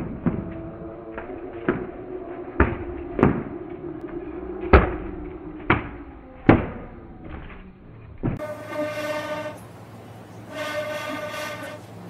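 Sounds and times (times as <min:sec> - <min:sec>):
horn-like tone: 0:08.4 - 0:09.7, 0:10.5 - 0:11.9.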